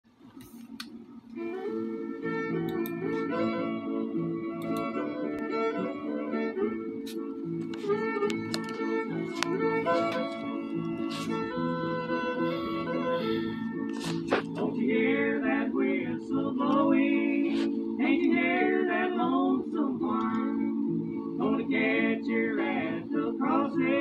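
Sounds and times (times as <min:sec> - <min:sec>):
instrumental music: 0:01.3 - 0:24.0.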